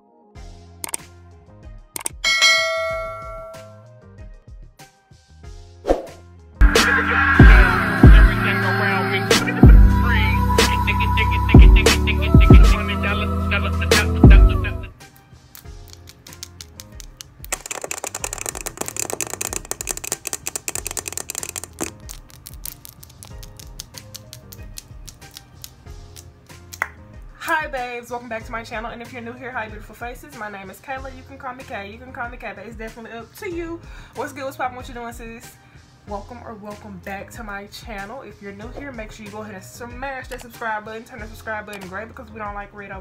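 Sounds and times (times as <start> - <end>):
background music: 0.0 - 43.0
double mouse click: 0.8 - 1.0, 2.0 - 2.2
nails clicking and tapping: 0.8 - 1.1, 15.4 - 27.0
bright bell ding: 2.2 - 3.8.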